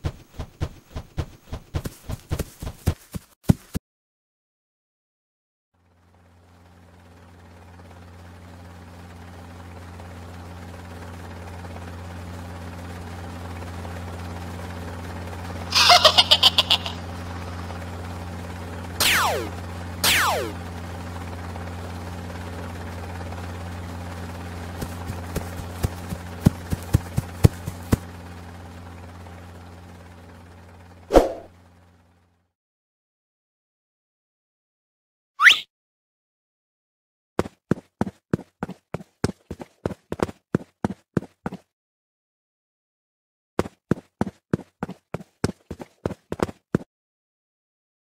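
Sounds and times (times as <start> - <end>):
rapid rattling pulses: 0.0 - 3.0, 5.9 - 32.2
low engine hum: 0.0 - 3.1, 5.8 - 32.4.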